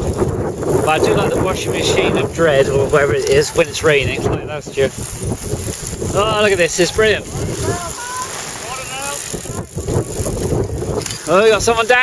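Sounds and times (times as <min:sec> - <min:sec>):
bikes riding past on grass: 0:00.0 - 0:12.0
wind rumbling on microphone: 0:00.0 - 0:12.0.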